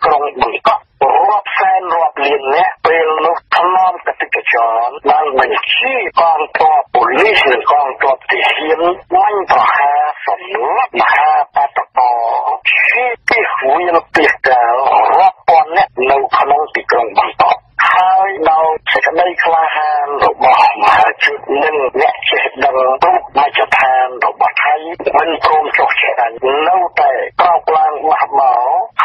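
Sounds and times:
person talking: 0.0 - 29.0.

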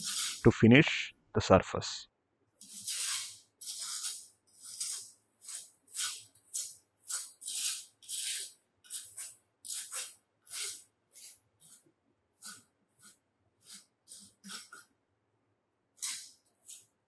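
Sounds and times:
trowel scraping moulding sand: 0.0 - 0.6, 2.6 - 14.9, 16.0 - 17.0.

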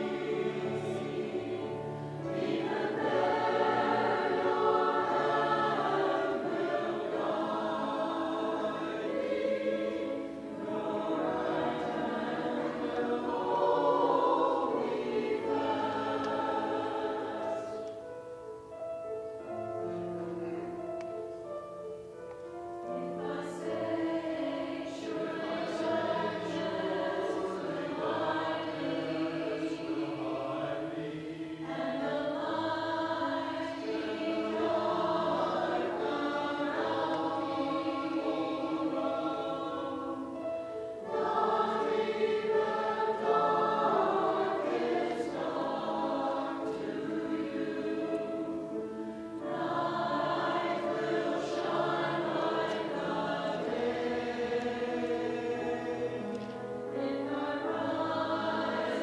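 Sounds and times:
choir singing: 0.0 - 18.3, 19.4 - 59.0.

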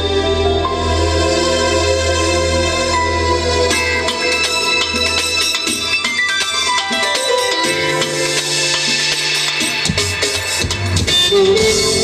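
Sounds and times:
bass guitar: 0.0 - 6.0, 7.6 - 12.0
synthesizer keyboard lead: 0.0 - 12.0.

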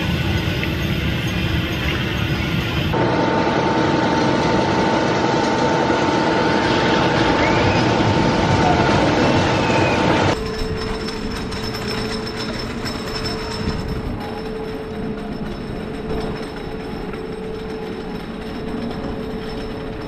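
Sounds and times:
roller coaster train rumbling: 0.0 - 20.0.

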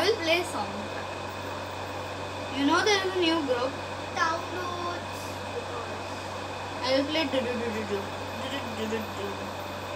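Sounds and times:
air conditioner hum and hiss: 0.0 - 9.9.

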